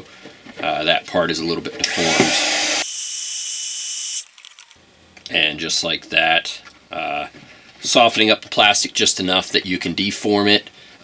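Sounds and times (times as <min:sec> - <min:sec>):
heat gun blowing air: 0:01.9 - 0:04.1.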